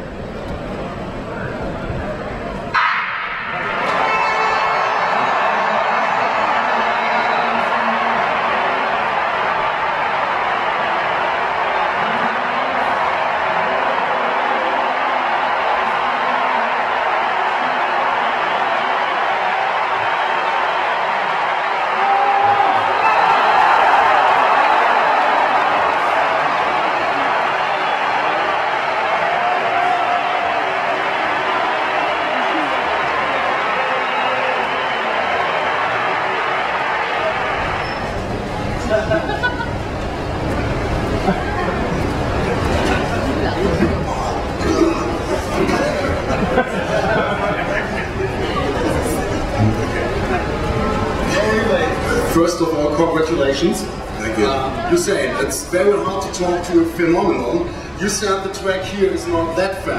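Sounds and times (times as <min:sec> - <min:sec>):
stadium crowd cheering: 0:00.0 - 0:59.9.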